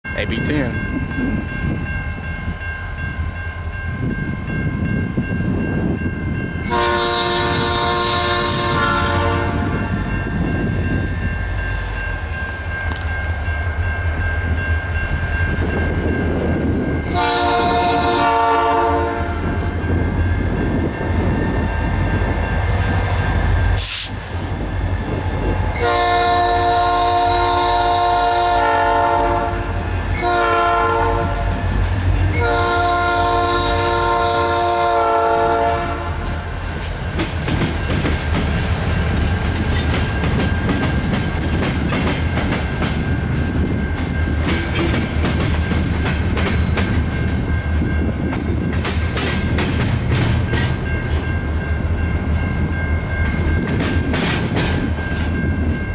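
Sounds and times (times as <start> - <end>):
train air horn: 6.6 - 9.8, 17.1 - 19.6, 23.8 - 24.1, 25.8 - 31.6, 32.3 - 36.5
wheels clacking over rail joints: 36.7 - 51.3, 53.2 - 55.9.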